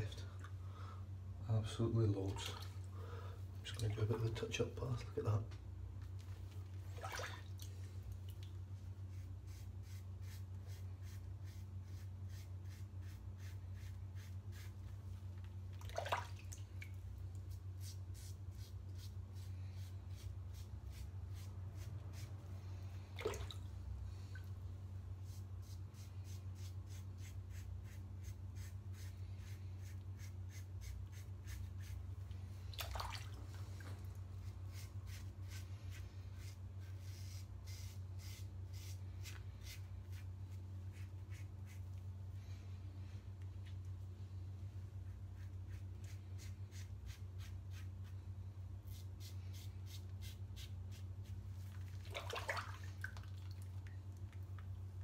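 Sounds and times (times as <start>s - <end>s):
steady low hum: 0.0s - 55.0s
razor scraping on scalp: 9.1s - 14.8s, 25.6s - 32.0s, 34.4s - 40.2s.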